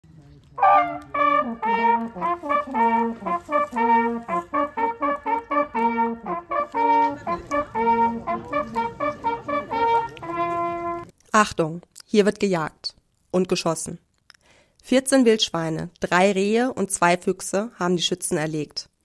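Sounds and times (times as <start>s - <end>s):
hunting horns blowing a call: 0.6s - 11.1s.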